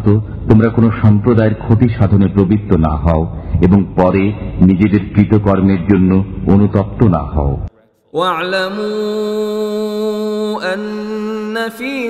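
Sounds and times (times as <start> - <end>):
man chanting melodically: 0.0 - 12.0.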